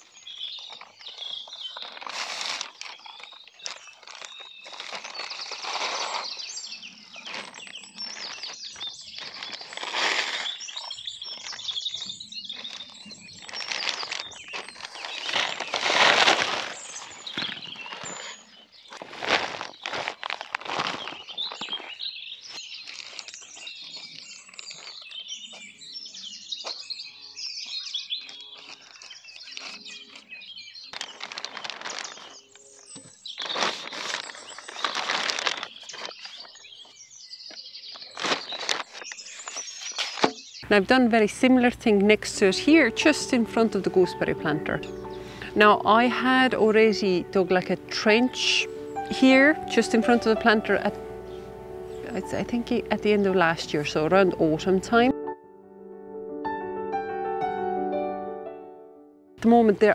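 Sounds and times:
birds chirping: 0:00.0 - 0:20.1, 0:20.7 - 0:55.2
wood chips and plastic rustling: 0:00.0 - 0:25.9, 0:27.6 - 0:55.1.

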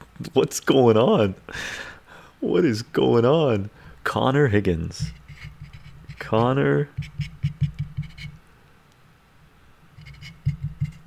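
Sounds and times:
rapid clicks and soft knocks: 0:04.9 - 0:09.0.

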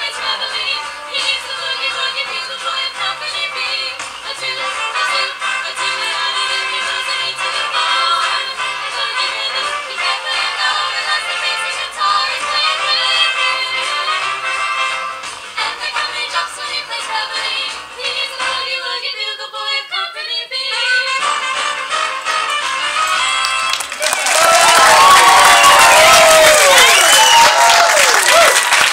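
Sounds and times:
women singing a cappella harmony: 0:00.0 - 0:14.5, 0:15.6 - 0:21.2
audience clapping and cheering: 0:22.0 - 0:28.9
high whoops: 0:24.0 - 0:28.9.

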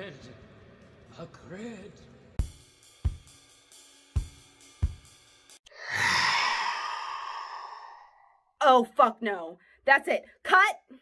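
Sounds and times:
drumbeat music: 0:02.4 - 0:05.5
breathy sigh-like exhale: 0:05.7 - 0:08.4.

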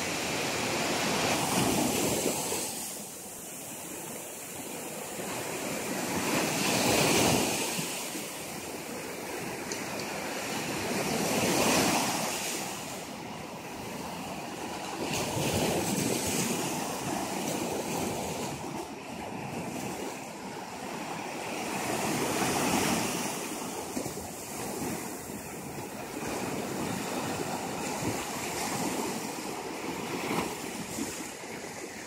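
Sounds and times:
small waves breaking on beach: 0:00.0 - 0:32.0.

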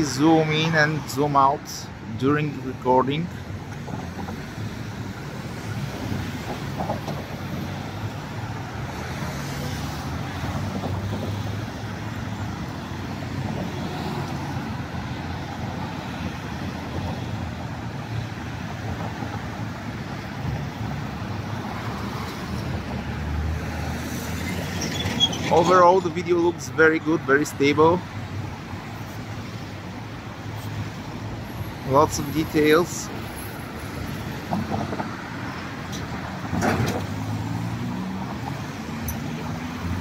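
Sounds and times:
road traffic passing: 0:00.0 - 0:40.0.

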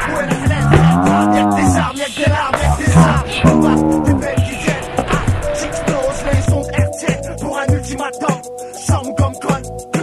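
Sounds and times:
hip-hop backing track: 0:00.0 - 0:10.0
low rising and falling tone: 0:02.6 - 0:04.4.

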